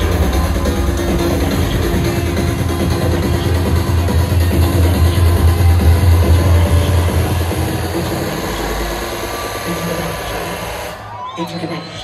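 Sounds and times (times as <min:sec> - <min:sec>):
heavy kick and bass: 0:00.0 - 0:11.1
loud techno music: 0:00.0 - 0:12.0.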